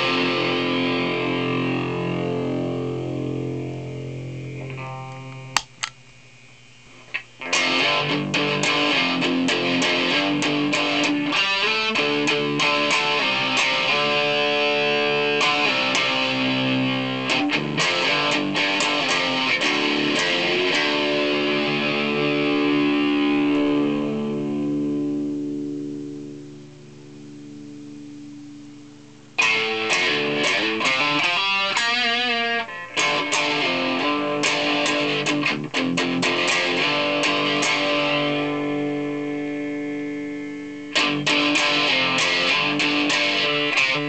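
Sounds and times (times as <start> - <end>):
distorted electric guitar: 0.0 - 44.0.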